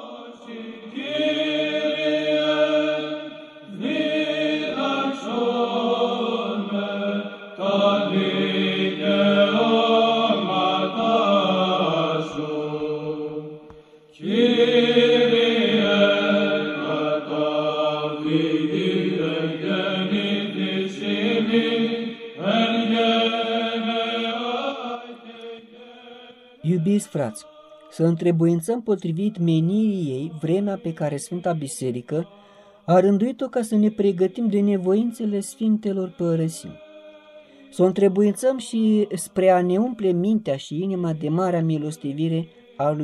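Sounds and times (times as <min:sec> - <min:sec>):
voices chanting slowly: 0:00.0 - 0:43.0.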